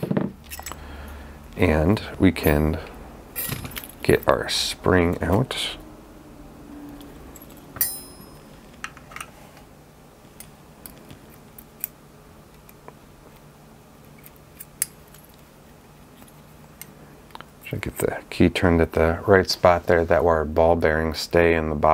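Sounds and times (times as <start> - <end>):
ringing metallic clink: 7.3 - 8.5.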